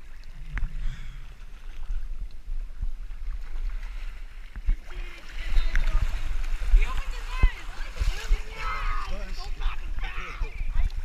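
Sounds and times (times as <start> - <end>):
water splashing: 0.0 - 11.0
water lapping against camera housing: 4.5 - 11.0.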